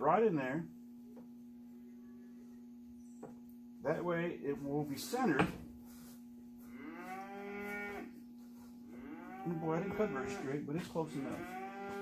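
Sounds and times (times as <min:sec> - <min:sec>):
faint steady hum: 0:00.0 - 0:12.0
cow mooing: 0:06.7 - 0:08.2, 0:08.9 - 0:12.0.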